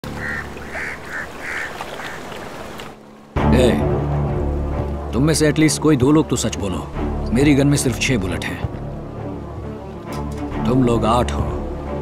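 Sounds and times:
bird calling: 0:00.1 - 0:02.8.

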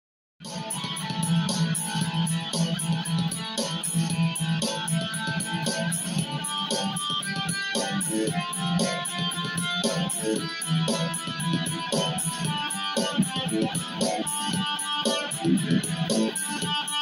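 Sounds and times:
heavy metal backing track: 0:00.4 - 0:17.0
electric guitar playing: 0:00.5 - 0:17.0.

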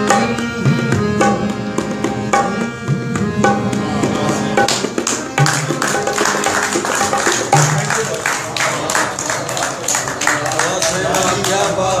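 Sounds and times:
tabla strokes: 0:00.0 - 0:08.1
harmonium notes: 0:00.0 - 0:12.0.

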